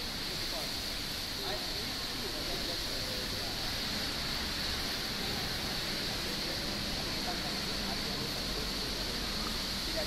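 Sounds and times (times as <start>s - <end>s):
even background hiss: 0.0s - 10.0s
faint distant voices: 0.1s - 10.0s.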